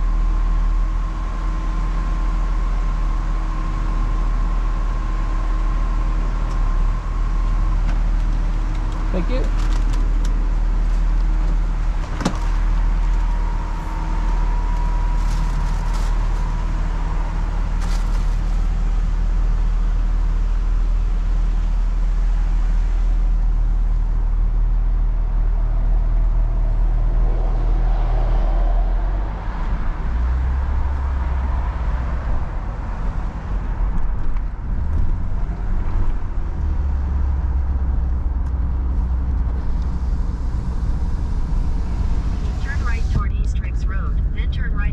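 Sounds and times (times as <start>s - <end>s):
car engine and road noise: 0.0s - 44.9s.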